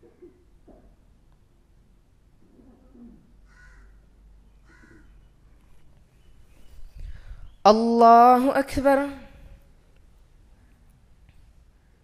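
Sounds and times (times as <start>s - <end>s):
faint bird calls: 2.5s - 7.7s.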